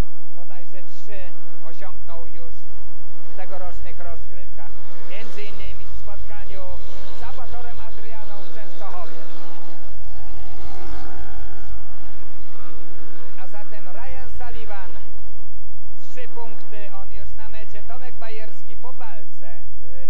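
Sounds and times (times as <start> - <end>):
motorcycle engines racing: 0.0 - 20.0.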